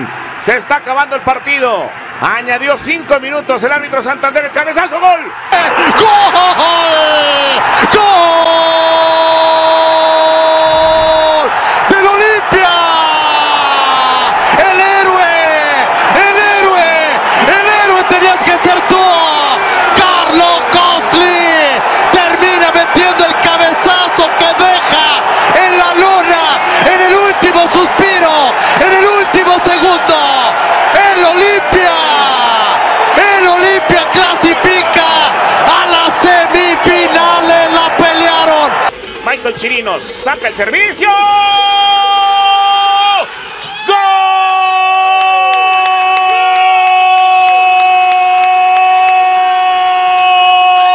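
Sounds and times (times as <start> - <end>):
commentator shouting excitedly: 4.7 - 38.9.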